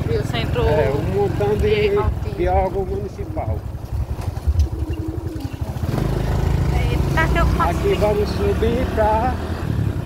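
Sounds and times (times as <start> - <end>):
motorcycle engine running: 0.0 - 10.0
road rumble: 0.0 - 10.0.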